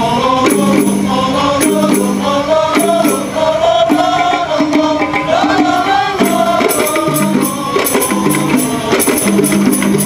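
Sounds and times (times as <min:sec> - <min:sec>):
jingling frame drum: 0:00.0 - 0:10.0
men singing in chorus: 0:00.0 - 0:10.0.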